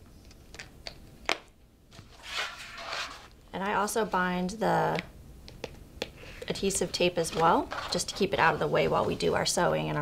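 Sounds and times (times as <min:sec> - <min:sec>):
paper rustling and sliding: 0:01.9 - 0:03.4, 0:07.2 - 0:09.3.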